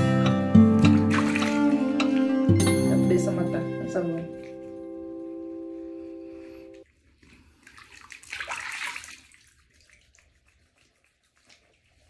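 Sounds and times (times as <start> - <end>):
held musical chord: 0.0 - 6.8
bath water splashing: 0.6 - 5.1, 6.9 - 12.0.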